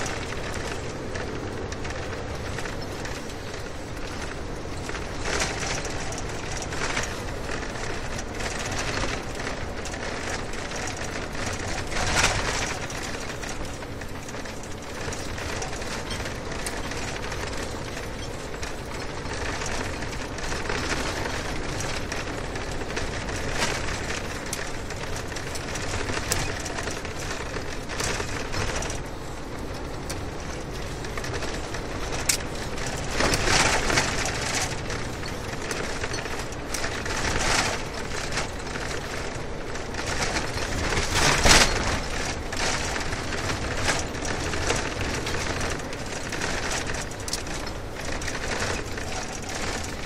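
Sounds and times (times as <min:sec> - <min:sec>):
vehicle tyre and wind noise: 0:00.0 - 0:50.0.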